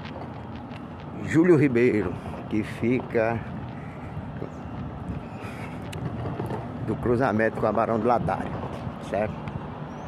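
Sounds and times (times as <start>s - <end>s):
low rumble of traffic: 0.0s - 10.0s.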